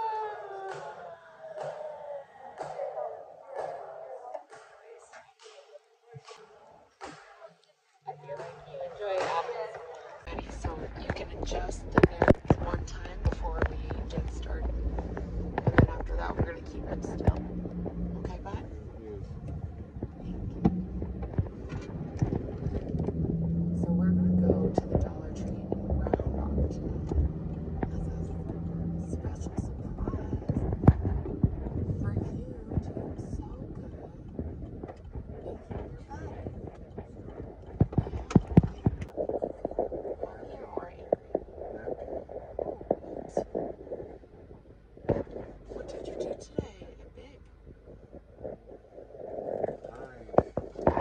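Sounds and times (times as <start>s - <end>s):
muffled voices: 0.0s - 51.0s
car cabin hum: 10.3s - 51.0s.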